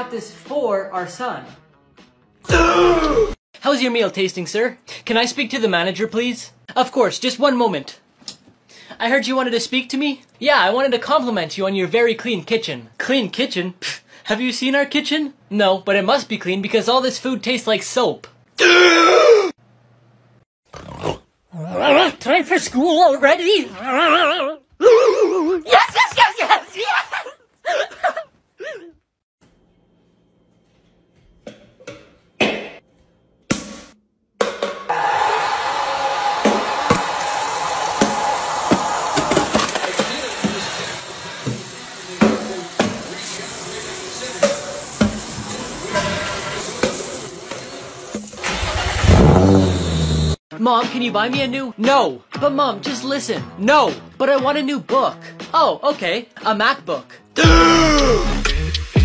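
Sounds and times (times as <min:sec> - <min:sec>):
man crying out aah: 0:02.5 - 0:03.4, 0:18.6 - 0:19.5, 0:57.4 - 0:58.4
car engine starting: 0:48.4 - 0:50.4.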